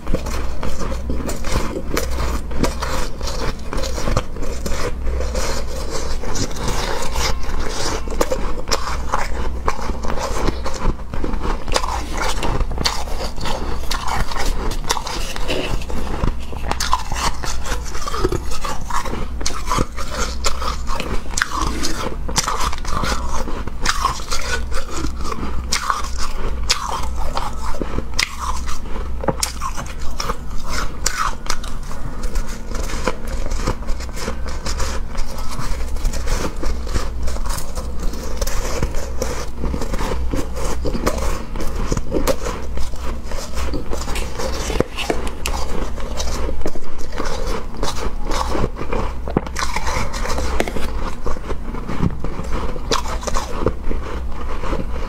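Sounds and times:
chewing crunchy shaved ice: 0.0s - 55.0s
steady low hum: 0.0s - 55.0s.

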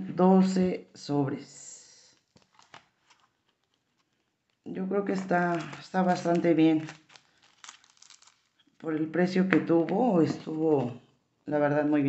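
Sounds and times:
plastic pockets clicking and rustling: 2.2s - 8.7s.

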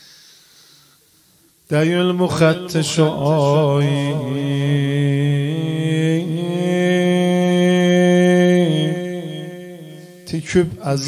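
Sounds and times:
man chanting a lament: 1.7s - 11.0s.

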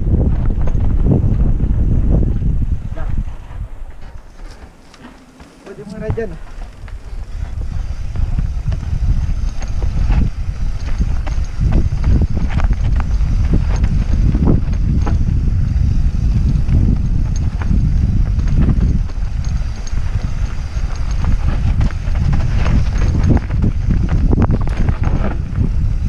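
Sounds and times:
wind buffeting microphone: 0.0s - 26.0s
bike rattling over bumps: 0.1s - 26.0s.

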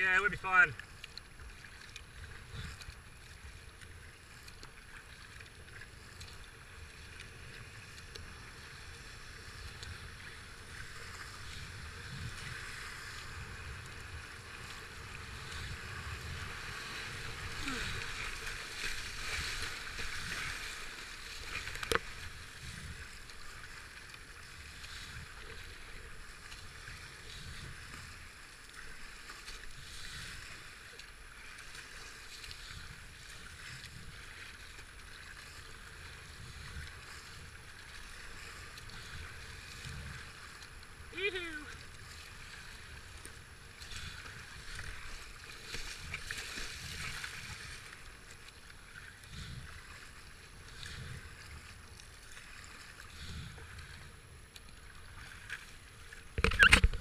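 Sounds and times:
rushing white water: 6.9s - 27.1s, 39.8s - 43.1s.

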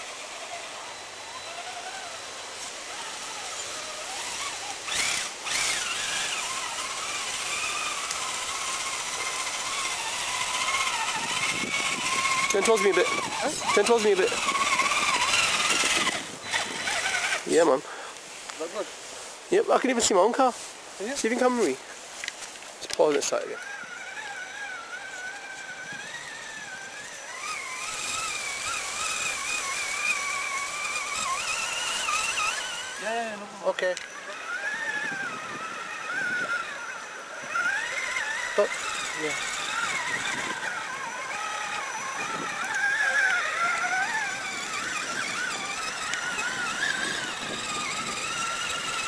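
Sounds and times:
toy car motor whine: 0.0s - 49.0s.

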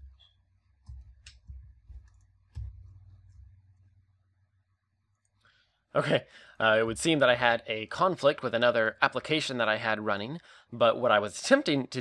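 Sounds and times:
keyboard and mouse clicks: 0.0s - 3.6s.

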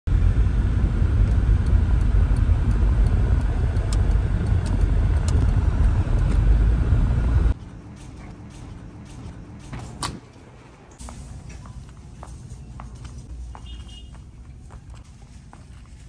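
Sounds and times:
car cabin road rumble: 0.1s - 10.2s.

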